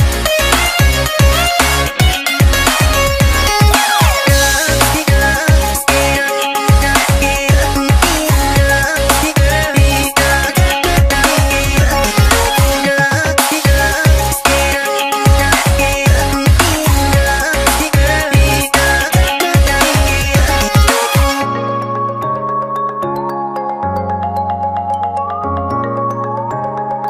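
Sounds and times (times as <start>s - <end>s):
deep bass kicks: 0.0s - 3.6s, 4.3s - 6.1s, 6.7s - 12.8s, 13.7s - 14.4s, 15.3s - 20.9s
electronic dance music: 0.0s - 23.2s.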